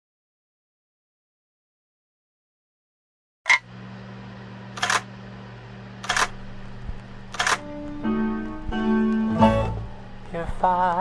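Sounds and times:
low steady hum: 3.6 - 11.0
camera shutter clicks: 4.8 - 5.1, 6.0 - 6.4, 7.3 - 7.6
music with held tones: 7.6 - 10.1.

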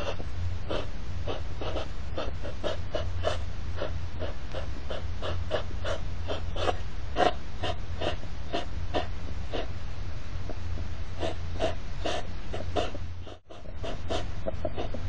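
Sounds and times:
hedgehogs huffing and snorting: 0.0 - 9.8, 10.5 - 15.0
steady low hum: 0.0 - 15.0.

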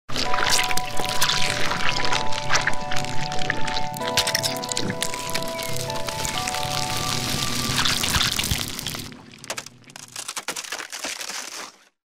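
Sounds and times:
crackling sound effects: 0.1 - 12.0
electronic chord tones: 0.3 - 9.0.

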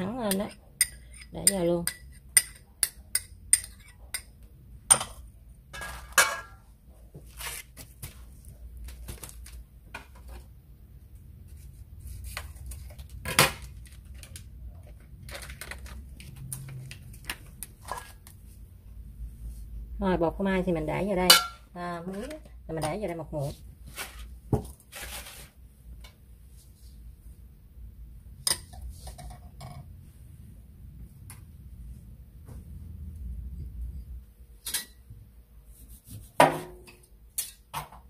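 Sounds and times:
metal spoon clinking on bowls: 0.3 - 5.2, 21.3 - 21.6
faint low hum: 25.6 - 36.2.

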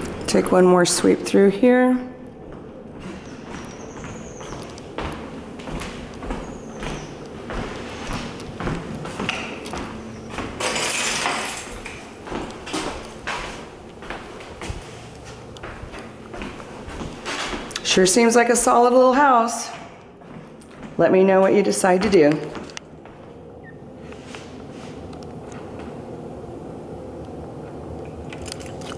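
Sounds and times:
footsteps: 2.2 - 23.4.

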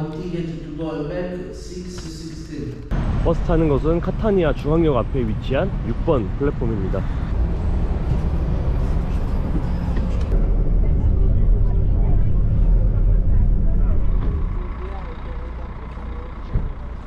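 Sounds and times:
bus engine rumbling: 0.0 - 17.0
passengers murmuring: 8.9 - 17.0.

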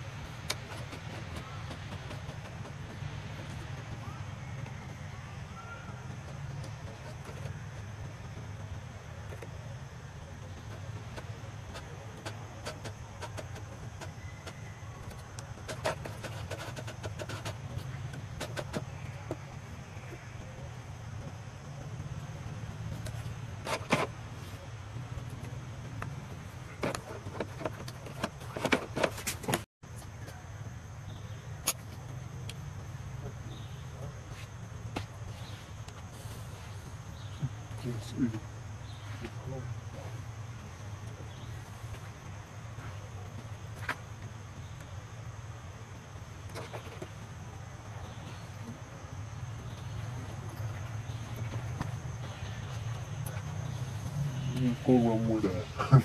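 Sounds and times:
sharp clicks and rustles: 0.0 - 30.4
low outdoor rumble: 0.0 - 56.0.

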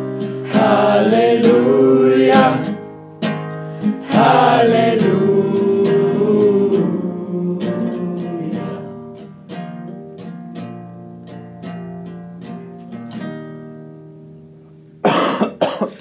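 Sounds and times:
guitar picked chords: 0.0 - 15.4.

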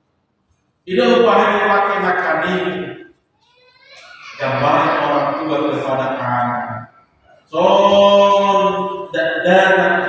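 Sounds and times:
man chanting: 4.4 - 6.8, 7.5 - 10.0.

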